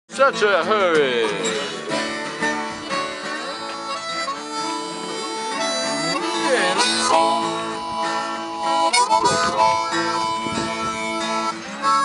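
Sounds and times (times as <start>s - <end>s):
strummed acoustic guitar: 0.1s - 12.0s
bluesy harmonica: 0.3s - 12.0s.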